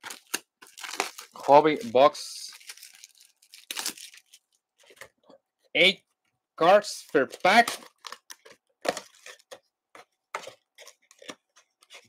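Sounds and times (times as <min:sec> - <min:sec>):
cardboard and wrapper rustling: 0:00.0 - 0:05.2, 0:07.3 - 0:12.0.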